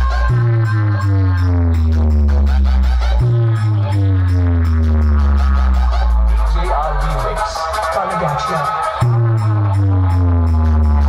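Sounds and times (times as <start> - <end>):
deep bass notes sliding downward: 0.0 - 7.6
loud electronic dance music: 0.0 - 11.0.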